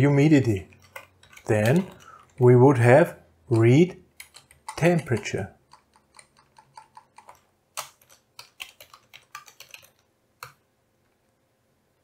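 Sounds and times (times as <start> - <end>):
computer keyboard typing: 0.4 - 2.5, 3.5 - 10.6.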